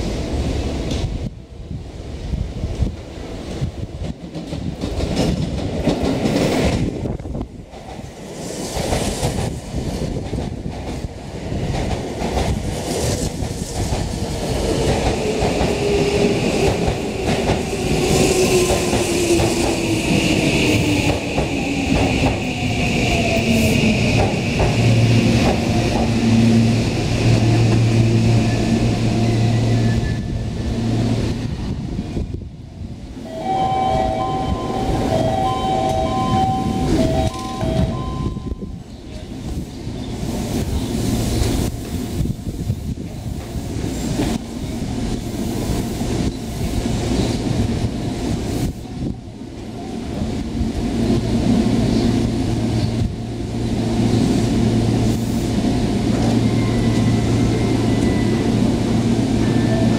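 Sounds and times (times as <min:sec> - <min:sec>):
train low steady hum: 0:00.0 - 0:59.9
train wheels rumbling on rails: 0:00.0 - 0:59.9
train brake whine: 0:33.3 - 0:38.8.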